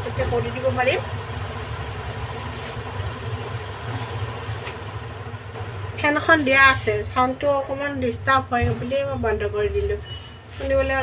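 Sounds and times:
electric fan humming: 0.0s - 10.0s.

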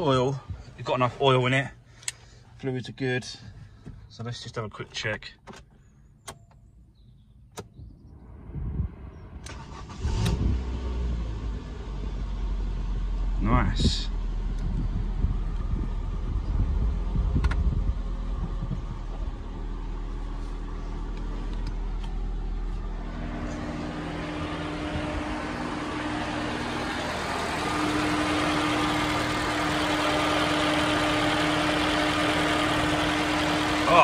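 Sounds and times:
car engine idling: 11.3s - 34.0s
radiator cooling fan rushing: 21.0s - 34.0s.

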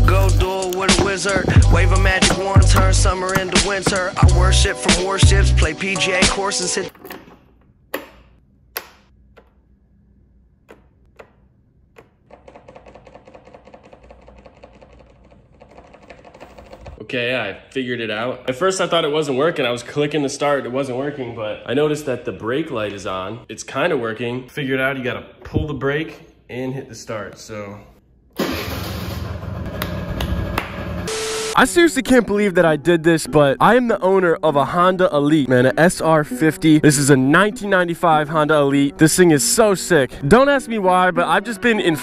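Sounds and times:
hand clap: 29.8s - 30.8s.

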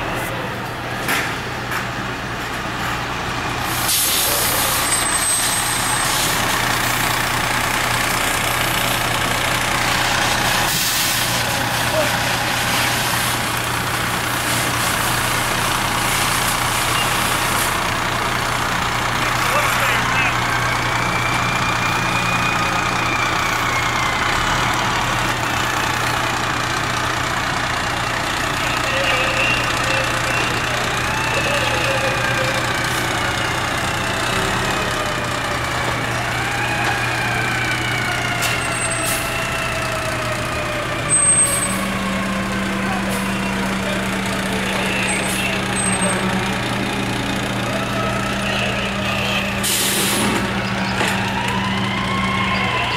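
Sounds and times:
fire truck engine droning: 0.0s - 52.9s.

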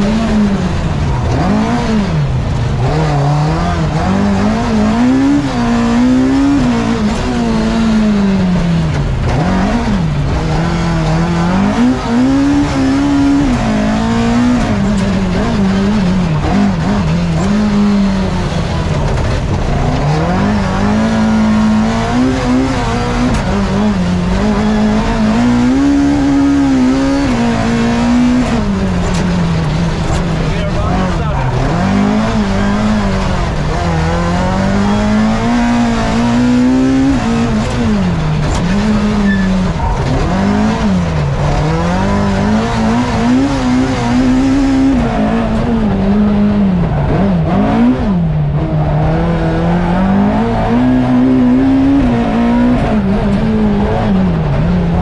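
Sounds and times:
rally car engine revving: 0.0s - 55.0s.

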